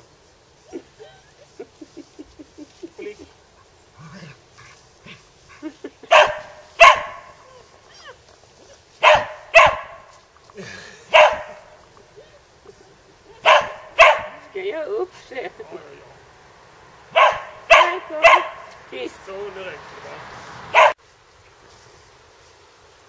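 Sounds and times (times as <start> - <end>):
dog barking: 6.1 - 7.4, 9.0 - 10.1, 11.1 - 11.8, 13.4 - 14.5, 17.1 - 18.7, 20.7 - 21.0.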